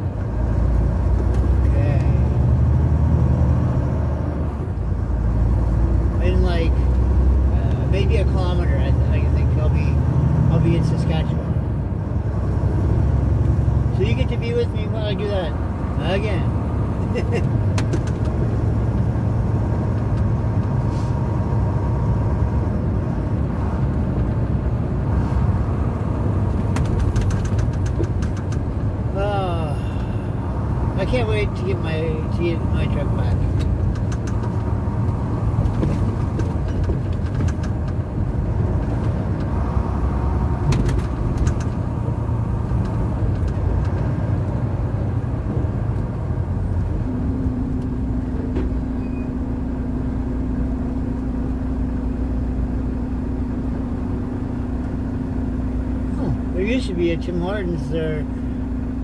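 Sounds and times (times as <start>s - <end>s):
truck engine and road drone: 0.0s - 59.0s.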